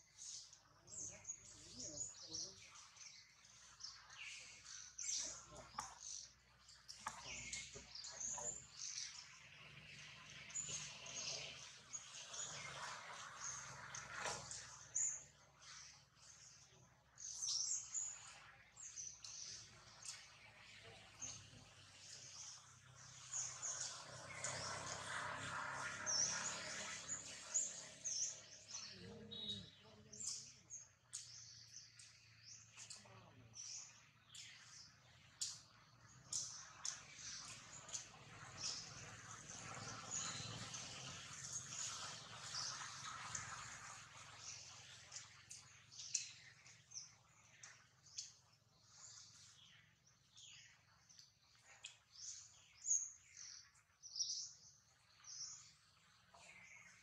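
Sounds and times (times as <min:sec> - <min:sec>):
small birds chirping: 0:00.0 - 0:57.0.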